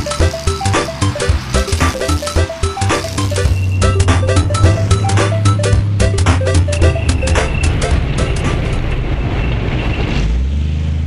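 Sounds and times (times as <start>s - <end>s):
music: 0.0s - 8.9s
tank engine and tracks rumbling: 0.0s - 11.0s.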